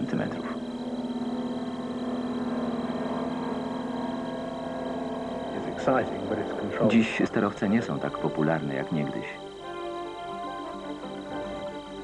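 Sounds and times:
airship engines droning: 0.0 - 12.0.

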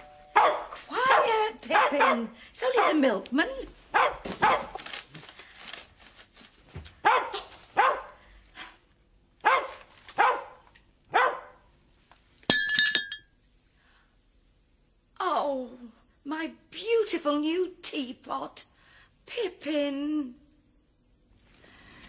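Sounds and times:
dog barking: 0.3 - 3.0, 3.9 - 4.8, 7.0 - 8.2, 9.4 - 11.7
china teapot smashing: 12.5 - 13.3.

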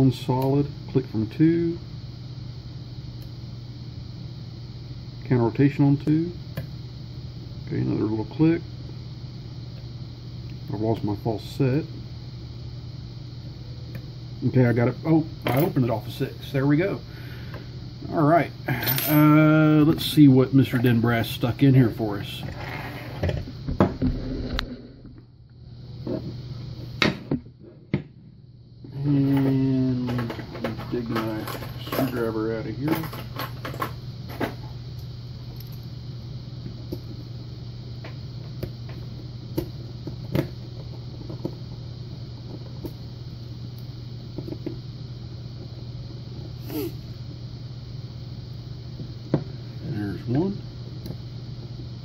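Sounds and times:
steady low hum: 0.0 - 52.0
wordless voice: 18.0 - 22.5, 28.9 - 33.0.

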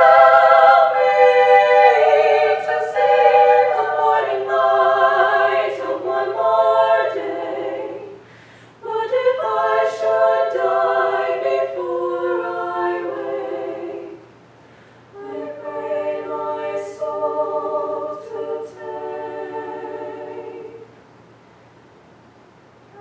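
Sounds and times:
treble choir singing: 0.0 - 14.4, 15.0 - 21.0.

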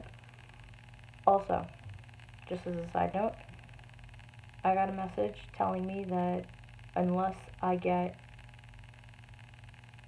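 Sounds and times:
steady low hum: 0.0 - 10.0
woman speaking: 1.3 - 1.8, 2.5 - 3.5, 4.6 - 8.2.

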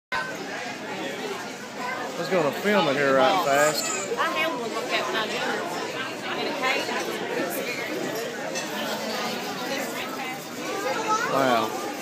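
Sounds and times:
indistinct chatter of people: 0.1 - 12.0.

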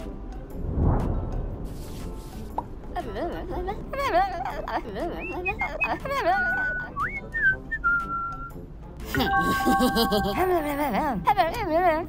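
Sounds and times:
person whistling a tune: 5.2 - 8.6.

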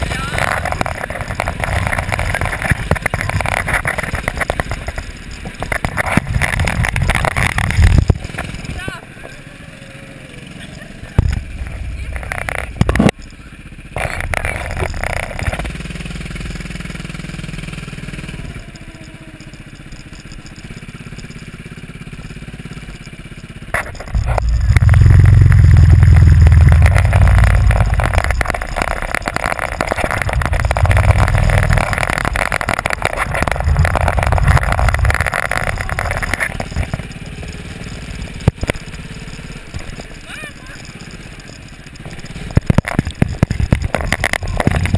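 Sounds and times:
go-kart engine running: 0.0 - 44.9.

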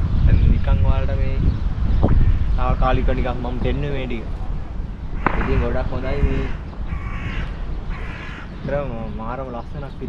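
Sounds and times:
wind rumble on microphone: 0.0 - 10.0
bird cawing: 5.0 - 9.1.

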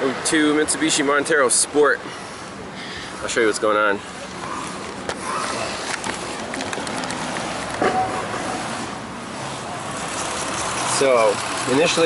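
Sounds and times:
vehicle traffic noise: 0.0 - 12.0.

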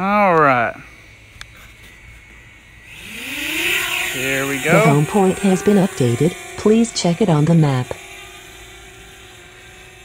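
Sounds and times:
drone propellers whining: 0.0 - 10.0.

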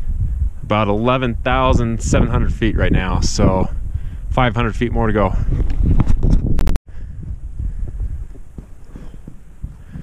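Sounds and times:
wind rumble on microphone: 0.0 - 10.0
footsteps on loose rock: 7.8 - 10.0.

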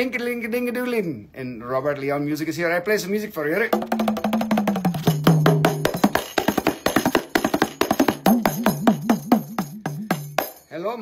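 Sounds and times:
frame drum rolls played by hand: 3.7 - 10.6.

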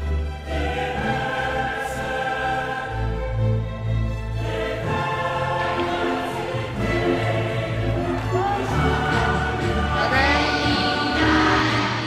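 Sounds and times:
choir singing held notes: 0.4 - 3.6, 4.3 - 12.0.

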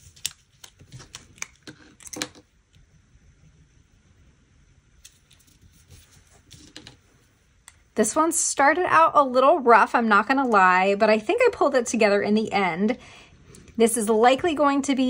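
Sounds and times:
paper rustling: 5.0 - 7.3.

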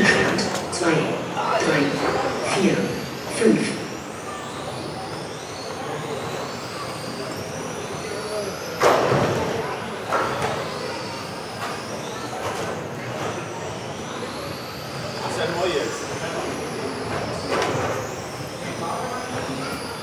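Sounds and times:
rc car motors whining: 0.0 - 20.0.

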